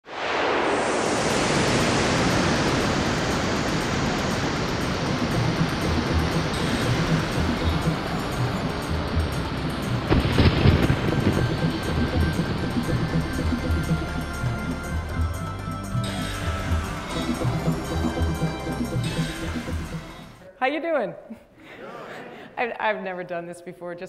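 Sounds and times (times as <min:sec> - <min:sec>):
rushing whoosh: 0:00.0 - 0:15.2
sharp hit: 0:00.1 - 0:20.4
low pulsing beat: 0:03.3 - 0:20.4.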